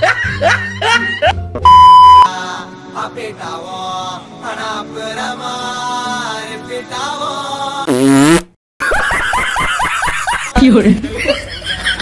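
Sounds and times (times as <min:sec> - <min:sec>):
fart noise: 0:07.9 - 0:08.6.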